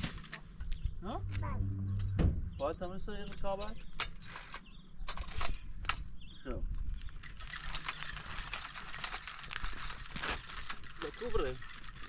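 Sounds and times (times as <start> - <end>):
bicycle rattling over stony ground: 0.0 - 0.9, 3.2 - 12.0.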